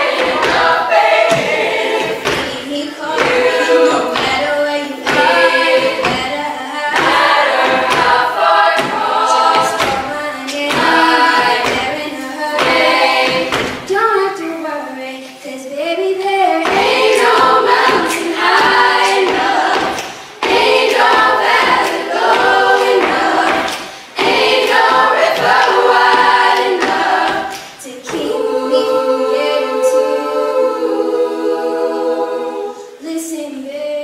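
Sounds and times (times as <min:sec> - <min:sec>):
girls' choir singing: 0:00.0 - 0:34.0
singers' breaths: 0:19.9 - 0:20.4, 0:23.6 - 0:24.2.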